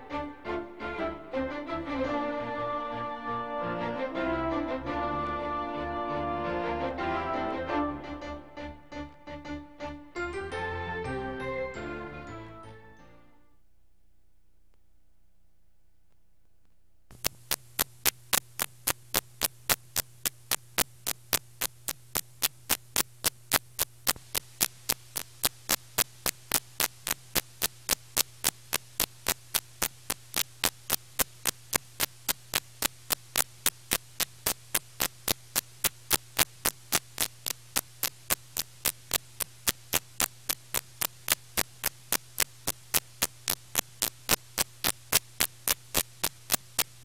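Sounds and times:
electrical hum and static: 13.6 - 47.0
sharp clicks: 16.1 - 47.0.

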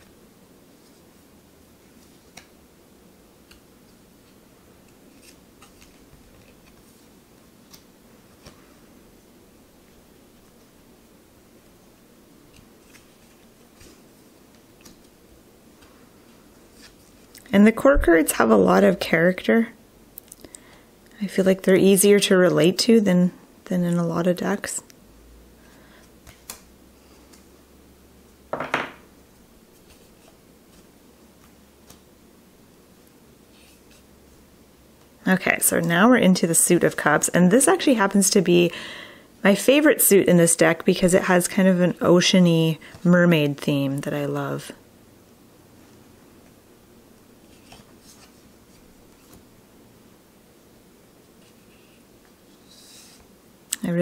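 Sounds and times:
cards clicking and flicking: 2.3 - 2.6, 12.5 - 15.2, 26.0 - 27.5, 29.8 - 32.0
card sliding against deck: 51.5 - 53.3.

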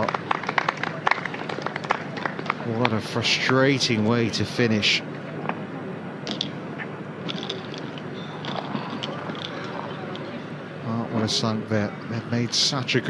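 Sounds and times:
murmur of voices: 0.0 - 13.0.

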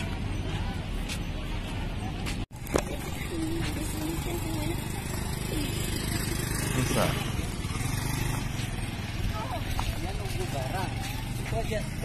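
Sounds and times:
outdoor ambient noise: 0.0 - 12.0
motorcycle engine idling: 2.6 - 12.0.

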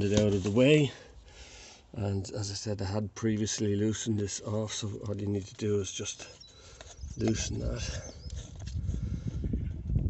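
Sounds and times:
plastic cap unscrewing: 4.9 - 9.0.

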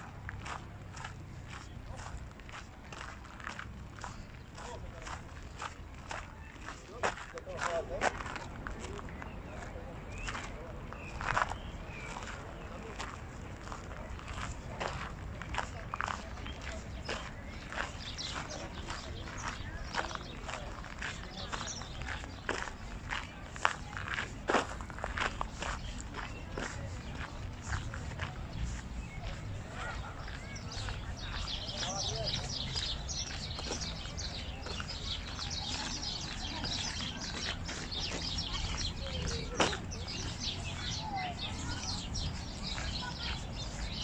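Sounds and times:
people's voices: 0.0 - 44.0
footsteps clicking: 10.1 - 44.0.

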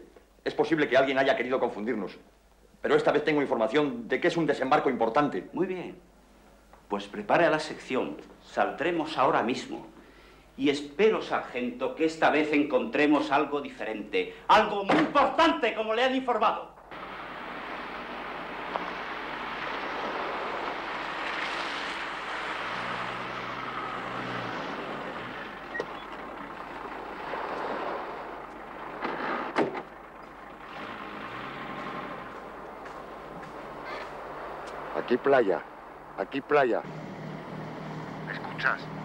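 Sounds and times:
vehicle engine driving over sand: 16.9 - 39.0
car door shutting: 29.0 - 29.9.

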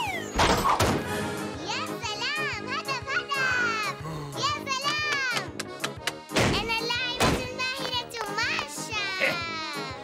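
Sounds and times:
swooping child-like vocals: 1.6 - 5.5, 6.6 - 10.0
cartoon music: 1.6 - 10.0.

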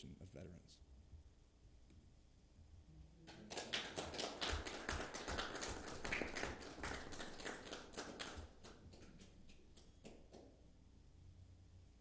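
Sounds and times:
small group applauding: 3.2 - 10.6.

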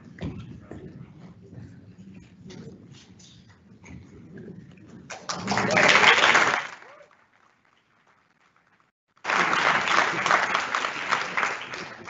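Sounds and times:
burst of applause: 5.1 - 7.6, 9.2 - 12.0.

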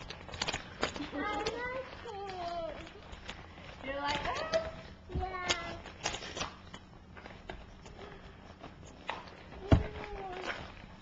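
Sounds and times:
wrapping paper crinkling: 0.0 - 11.0.

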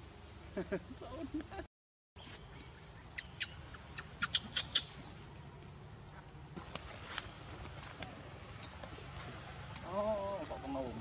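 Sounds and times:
young monkey squeaking: 3.2 - 5.0.

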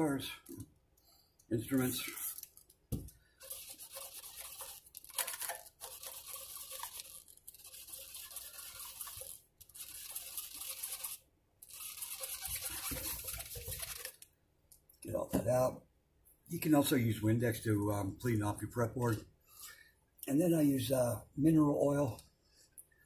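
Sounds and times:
cloth rag rubbing fretboard: 5.8 - 14.1.

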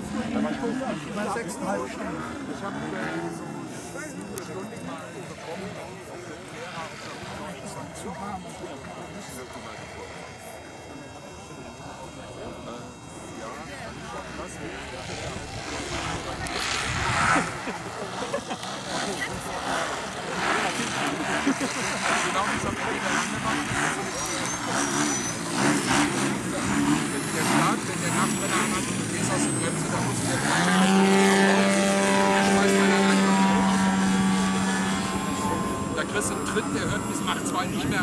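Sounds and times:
model plane engine and propeller: 0.0 - 38.0.

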